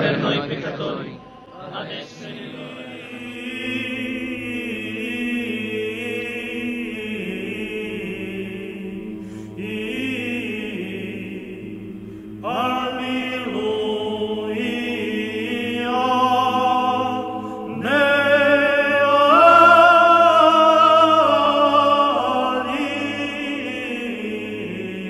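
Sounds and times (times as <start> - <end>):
higher voices singing held notes: 0.0 - 25.0
low vocal chanting: 0.0 - 25.0.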